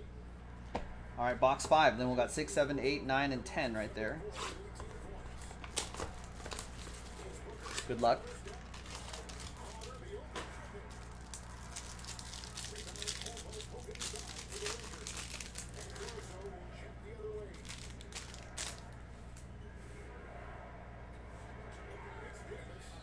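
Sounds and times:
plastic wrapper crinkling and tearing: 5.6s - 10.1s, 10.9s - 16.5s, 17.5s - 19.0s.

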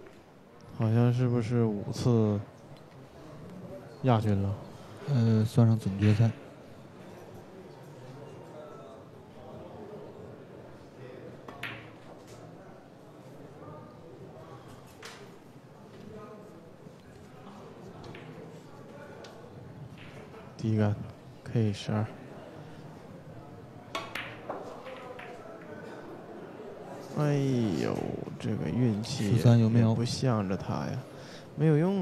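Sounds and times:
cue tip tapping ball: 11.5s - 12.4s, 18.0s - 18.7s, 23.9s - 25.7s
pool balls clicking: 11.5s - 12.4s, 23.9s - 25.8s.

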